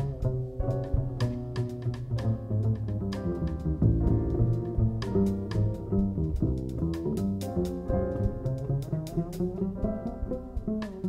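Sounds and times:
upright bass plucked: 0.0s - 11.0s.

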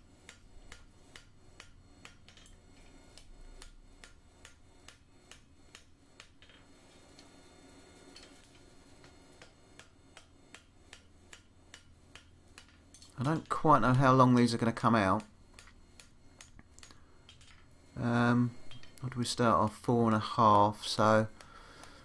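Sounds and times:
mallet tapping hot iron on anvil: 0.2s - 6.4s, 9.3s - 13.6s, 15.2s - 16.6s.

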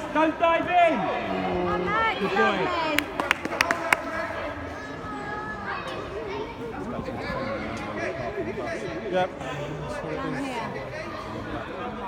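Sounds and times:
children shouting and chattering: 1.1s - 12.0s.

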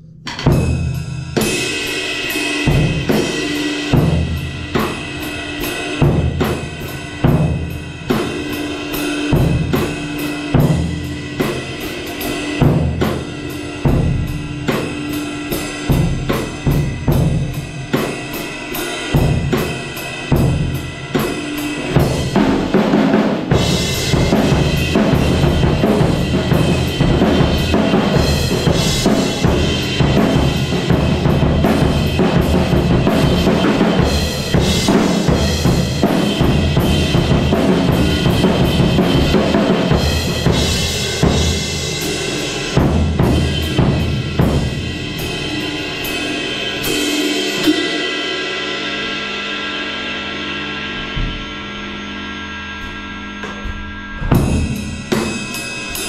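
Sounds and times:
heavy cymbal wash: 0.0s - 56.0s
kick drum: 51.1s - 51.6s, 52.8s - 54.8s.

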